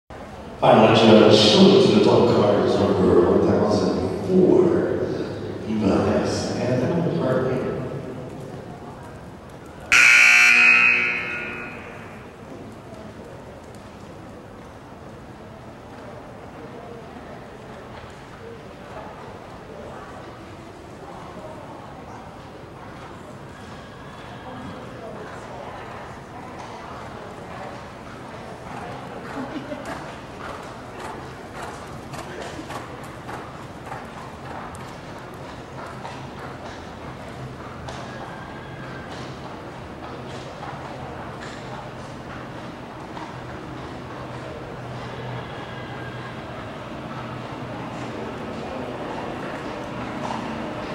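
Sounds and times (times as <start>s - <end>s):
people talking in background: 0.1s - 10.0s, 10.8s - 50.9s
loud electronic buzzer tone: 9.9s - 12.3s
horse hoofbeats cantering on dirt: 27.6s - 44.4s.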